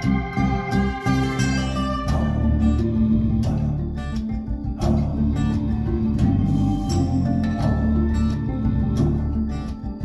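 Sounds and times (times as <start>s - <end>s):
deep sustained bass: 0.0s - 10.0s
plucked guitar music: 0.0s - 10.0s.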